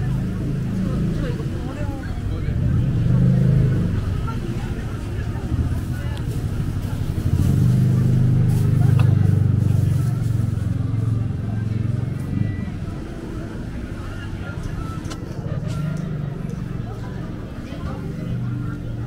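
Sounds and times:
engine humming: 0.0 - 19.0
people's voices on street: 0.0 - 19.0.

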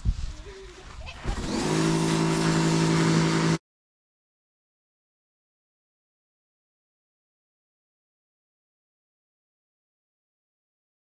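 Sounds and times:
pressure washer motor hum: 1.4 - 3.6.

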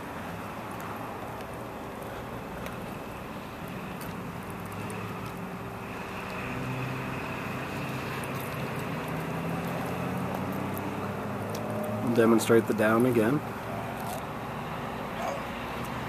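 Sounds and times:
road traffic noise: 0.0 - 16.0
vehicle engine hum: 0.0 - 16.0.

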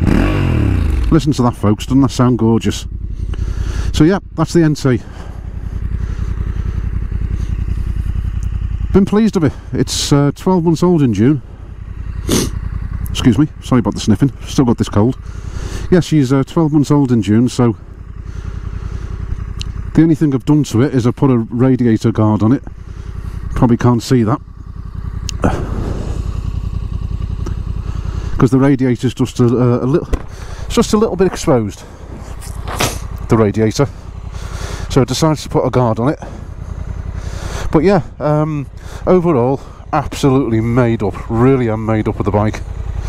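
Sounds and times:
motorcycle engine idling: 0.0 - 43.0.

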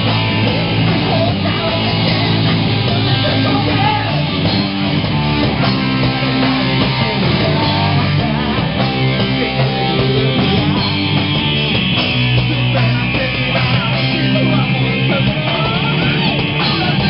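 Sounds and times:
heavy metal band playing: 0.0 - 17.0.

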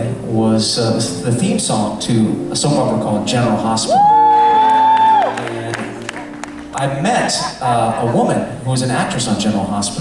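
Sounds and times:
keyboard chord: 0.0 - 9.6
audience member whooping: 3.8 - 5.6.

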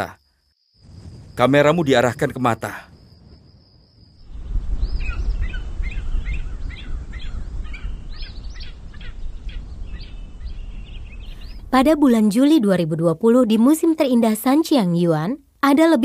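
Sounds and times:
birds chirping: 4.1 - 12.3.

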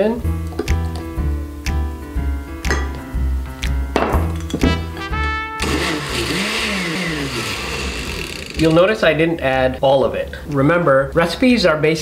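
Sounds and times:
background music with steady beat: 0.0 - 6.6
blender whirring: 5.6 - 8.8.

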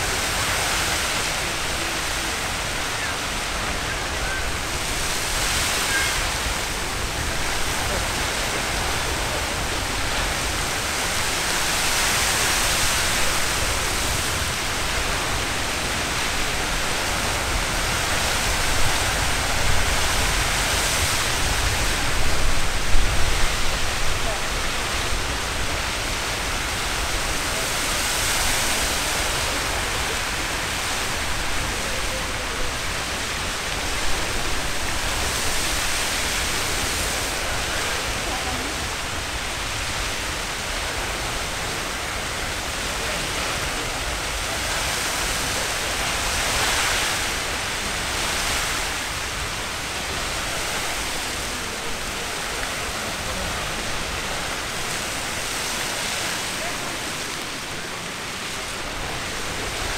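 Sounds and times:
geyser water and steam rushing: 0.0 - 59.9.

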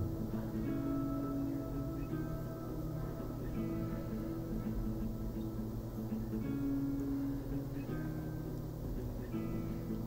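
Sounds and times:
guitar background music: 0.0 - 10.0.

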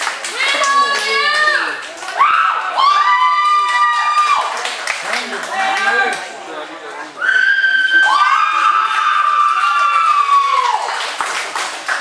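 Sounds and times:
scattered clapping: 0.0 - 6.4, 8.9 - 12.0.

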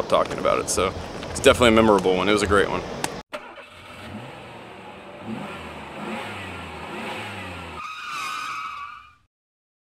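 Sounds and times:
engine running: 2.8 - 7.8
tyres screeching in a skid: 7.2 - 9.3.

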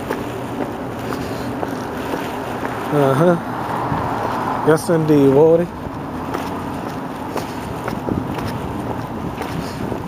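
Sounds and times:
city street noise: 0.0 - 10.0
wind buffeting microphone: 0.0 - 10.0.

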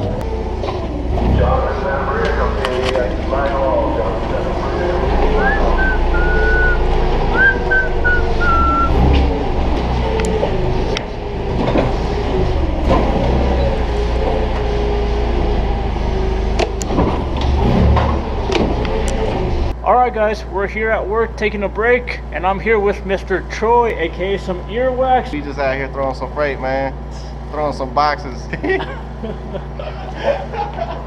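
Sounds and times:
forklift motor rumble: 0.0 - 27.5
short high tones: 5.4 - 6.8, 7.4 - 9.0.

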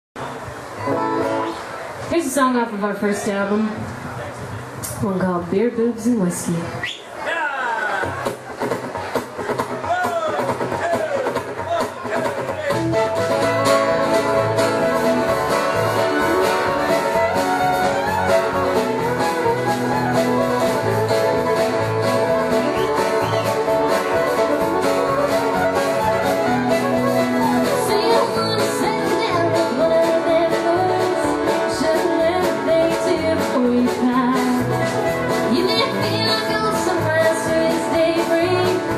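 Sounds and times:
live country band playing: 0.2 - 3.8, 4.9 - 6.8, 8.0 - 38.9.

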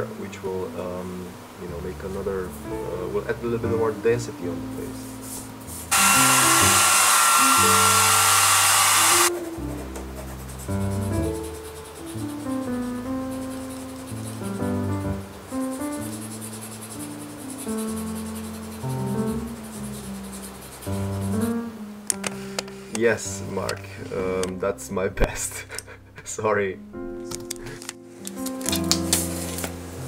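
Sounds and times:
aerosol spray can hissing: 5.9 - 9.3
plucked music: 26.8 - 30.0.

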